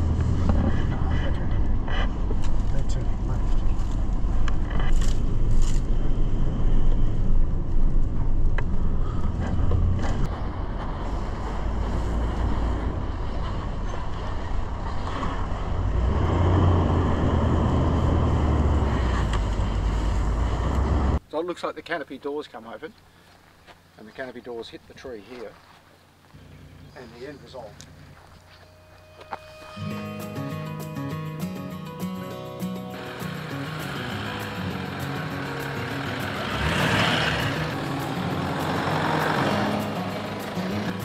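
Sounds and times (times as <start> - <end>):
vehicle engine low rumble: 0.0 - 21.2, 26.0 - 29.2, 33.0 - 41.0.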